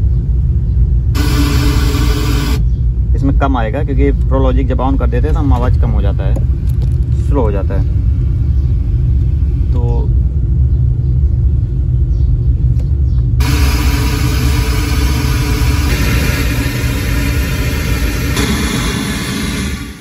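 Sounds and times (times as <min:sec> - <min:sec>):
deep bass rumble from speakers: 0:00.0 - 0:20.0
loud hiss: 0:01.2 - 0:02.6, 0:13.4 - 0:20.0.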